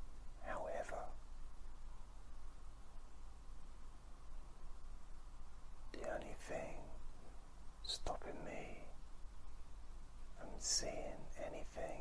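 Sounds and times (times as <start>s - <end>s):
low steady hum: 0.0s - 12.0s
man whispering: 0.4s - 1.2s, 5.9s - 7.0s, 7.8s - 9.0s, 10.4s - 12.0s.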